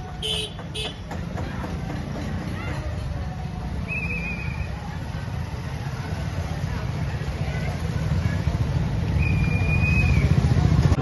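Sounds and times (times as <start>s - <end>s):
faint crowd voices: 0.0s - 11.0s
vehicle engine low rumble: 0.0s - 11.0s.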